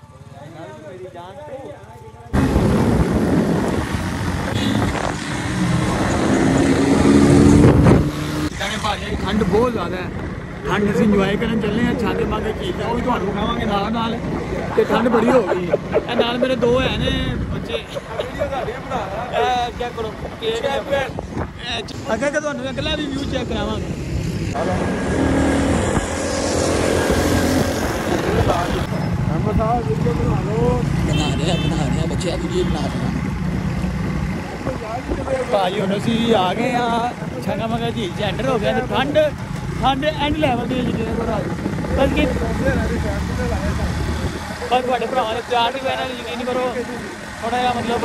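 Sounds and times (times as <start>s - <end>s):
wind rushing on microphone: 2.4s - 10.4s, 16.5s - 18.8s, 19.5s - 30.0s, 33.9s - 35.6s, 40.4s - 42.5s.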